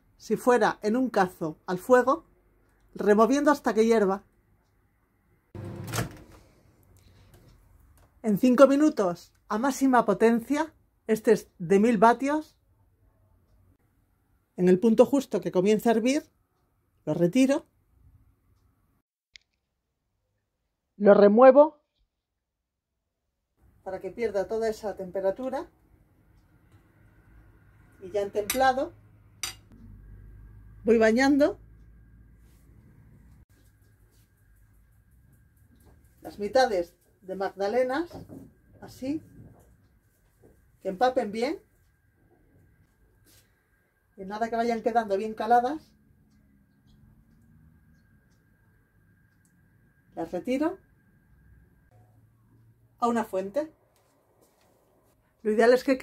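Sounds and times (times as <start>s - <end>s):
microwave door shutting: 5.6s - 6.3s
wire whisk clinking on crockery: 29.4s - 29.7s.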